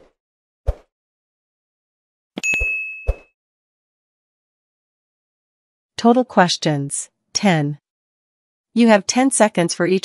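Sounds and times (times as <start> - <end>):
bright bell chime: 2.4 - 3.2.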